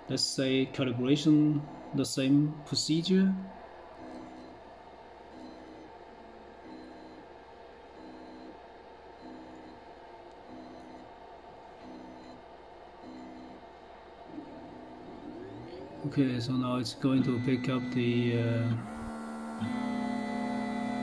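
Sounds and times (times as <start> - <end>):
steady machine hum: 0.0 - 21.0
stepper motors whining: 14.3 - 21.0.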